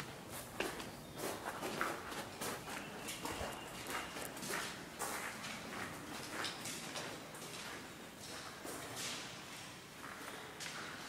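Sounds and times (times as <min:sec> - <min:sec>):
footsteps on concrete floor: 0:00.0 - 0:11.0.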